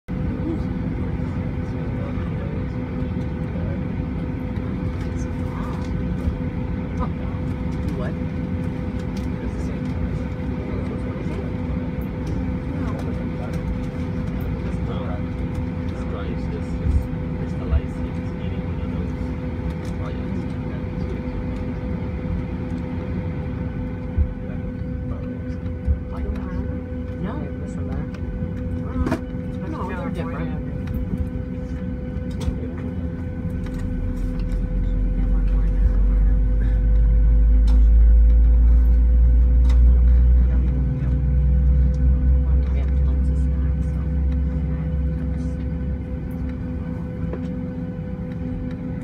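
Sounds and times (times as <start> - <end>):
constant hum: 0.0 - 49.0
cabin ventilation drone: 0.1 - 49.0
indistinct passenger chatter: 0.1 - 49.0.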